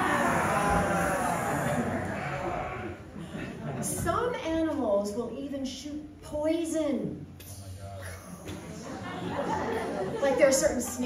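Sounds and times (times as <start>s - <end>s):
scattered voices: 0.0s - 3.1s
crowd hissing: 0.0s - 3.4s.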